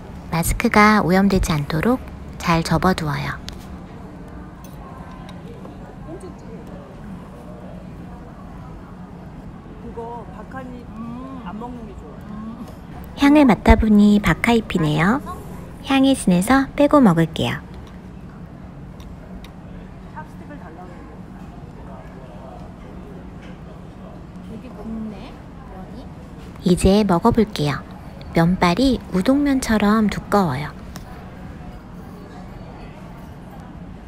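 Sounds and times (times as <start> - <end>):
steady low hum: 0.0 - 4.4, 12.2 - 19.4, 26.3 - 32.1.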